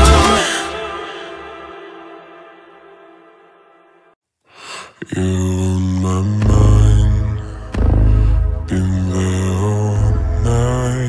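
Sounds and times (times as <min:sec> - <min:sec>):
person singing long notes: 0:00.0 - 0:02.6, 0:05.0 - 0:11.0
deep bass: 0:06.2 - 0:11.0.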